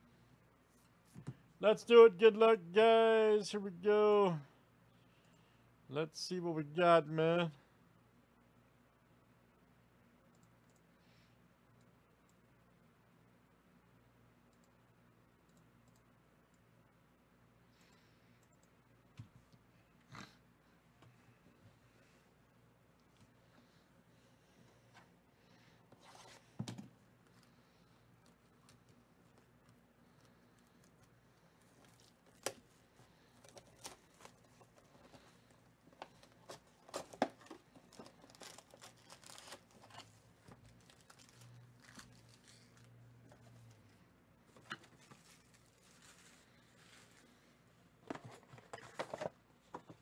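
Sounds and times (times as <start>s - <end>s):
foil packs rustling and crinkling: 36.0s - 42.9s, 45.0s - 47.3s.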